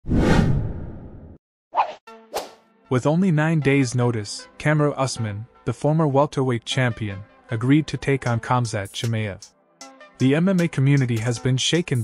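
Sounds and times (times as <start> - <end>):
brief swish: 0.0 - 1.0, 1.8 - 2.6.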